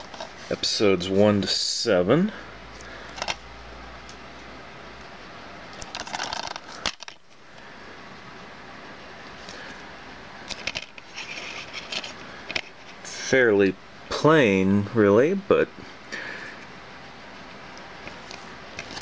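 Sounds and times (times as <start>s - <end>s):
plastic case clicking and rattling: 5.8s - 7.2s.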